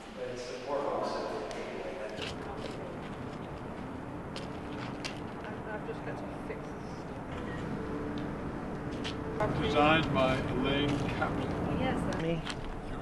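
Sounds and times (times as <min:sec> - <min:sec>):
steady outdoor hum: 0:00.0 - 0:13.0
indistinct voices talking: 0:05.2 - 0:13.0.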